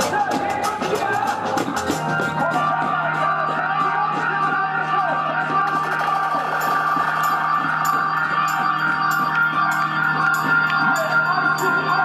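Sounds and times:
drum band playing: 0.0 - 12.0
sustained tones: 1.8 - 12.0.

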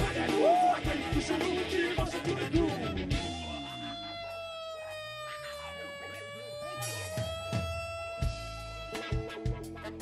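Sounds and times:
rock band sustained note: 0.0 - 10.0.

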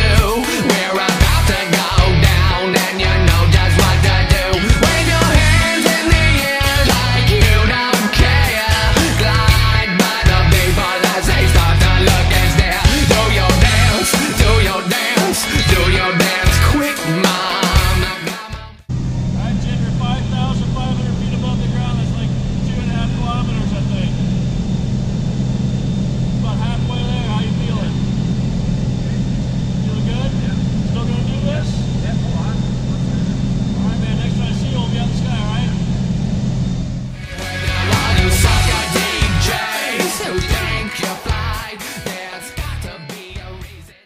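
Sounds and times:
music: 0.0 - 18.9, 37.2 - 44.0
small plane engine and propeller drone: 18.8 - 41.2.

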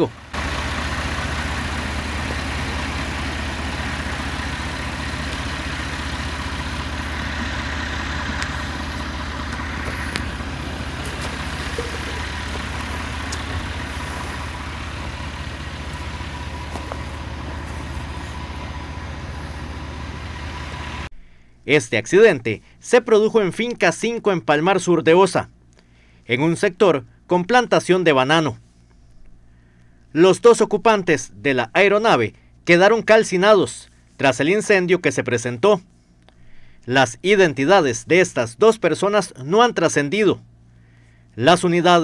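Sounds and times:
engine idling rumble: 0.0 - 21.6, 28.7 - 32.7, 35.9 - 38.4, 40.4 - 41.4.

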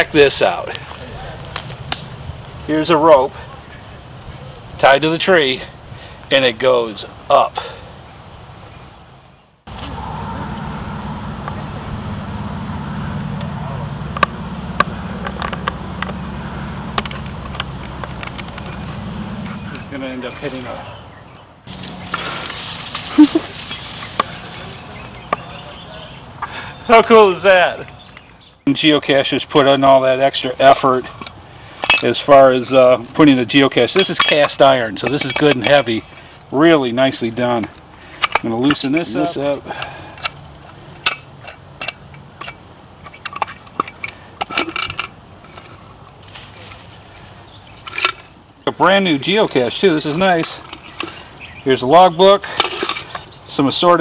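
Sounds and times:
high insect buzz: 7.1 - 28.9, 45.0 - 52.2
sharp clicks and knocks: 17.0 - 18.8
rope rustling through branches: 21.6 - 25.8, 45.4 - 48.4
metal latch clicks and clinks: 41.8 - 45.2.

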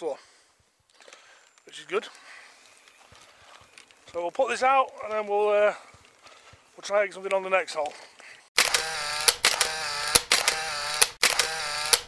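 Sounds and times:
sharp clicks: 8.6 - 12.0.

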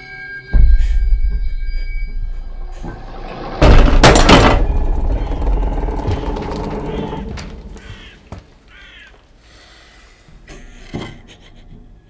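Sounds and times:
heavy door-like thud: 2.2 - 8.2.

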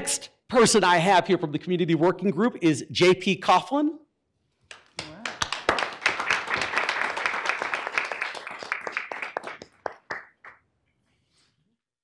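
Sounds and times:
audience applauding: 4.7 - 10.6.

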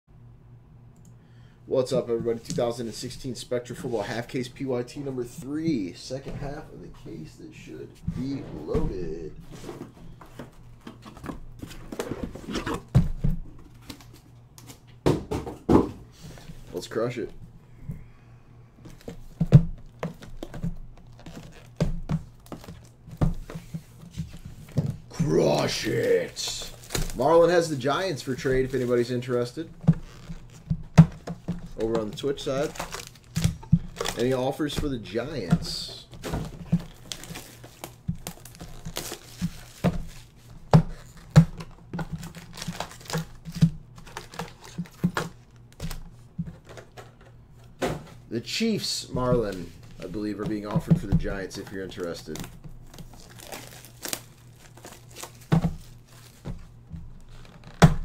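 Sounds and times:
boxes tapping and knocking on table: 15.0 - 16.0
foil wrappers crinkling: 19.8 - 23.0, 25.2 - 30.6, 31.7 - 46.0, 51.5 - 56.6.

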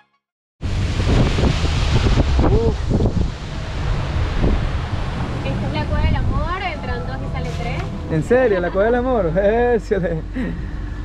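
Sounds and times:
wind buffeting microphone: 0.6 - 8.8
water rushing past hull: 0.6 - 9.6.

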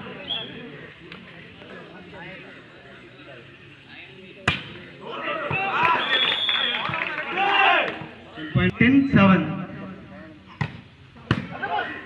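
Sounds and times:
people shouting: 5.0 - 8.0.

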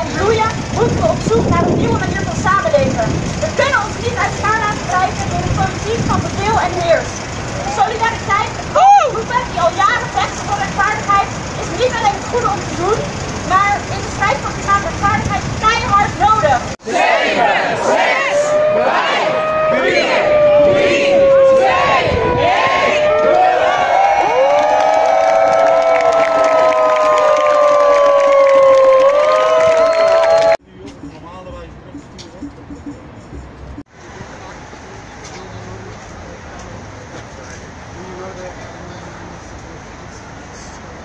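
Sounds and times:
woman speaking through a megaphone: 0.0 - 16.8
voices holding sagging notes: 0.0 - 24.0
crowd cheering and whooping: 8.7 - 9.2, 18.1 - 30.6.

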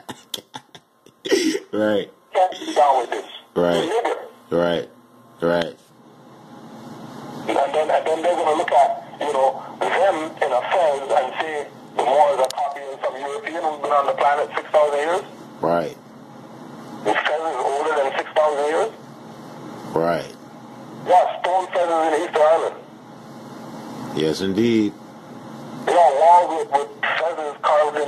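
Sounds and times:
person talking over radio: 2.4 - 4.3, 7.5 - 15.3, 17.0 - 19.0, 21.1 - 22.8, 25.8 - 28.0.

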